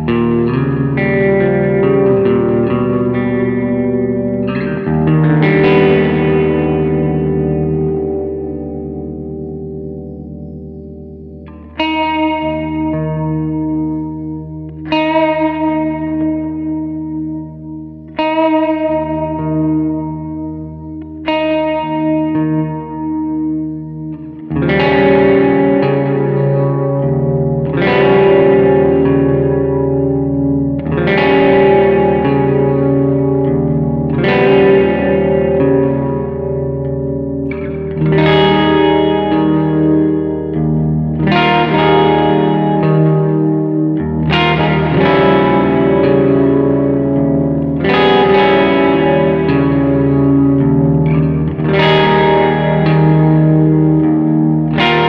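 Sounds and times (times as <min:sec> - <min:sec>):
distorted electric guitar chords: 0:00.0 - 0:55.0.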